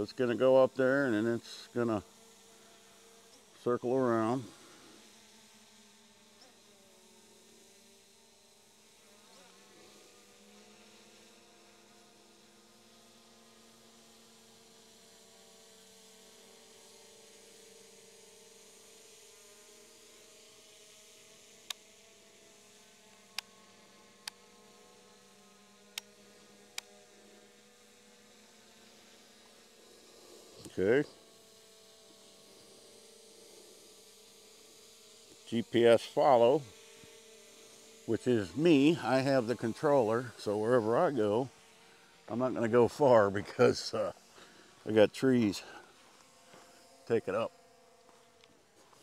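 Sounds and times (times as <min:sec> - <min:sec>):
drone propellers buzzing: 0:22.6 - 0:49.0.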